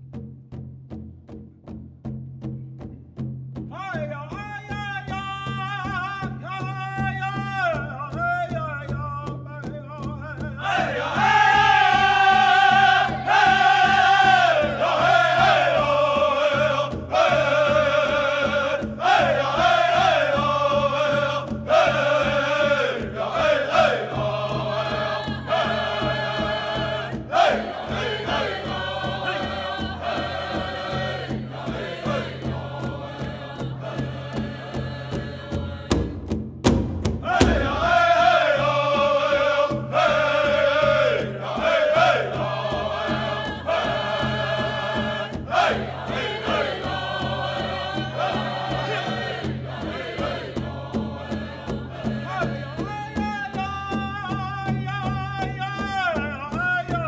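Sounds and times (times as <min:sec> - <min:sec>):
large drum beat: 0:00.0 - 0:57.0
singers chanting in high voices: 0:10.6 - 0:36.1, 0:37.2 - 0:54.1.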